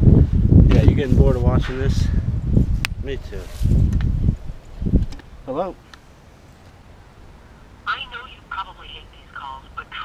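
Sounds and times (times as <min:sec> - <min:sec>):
recorded voice through phone speaker: 0:07.9 - 0:10.0.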